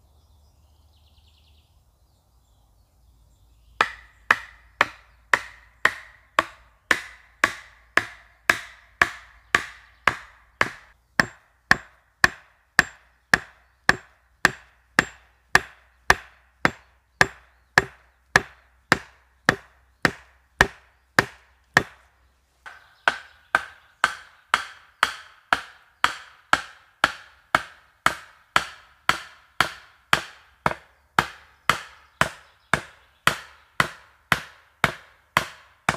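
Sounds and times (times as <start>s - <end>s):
hatchet striking wooden stake: 3.8s - 35.9s.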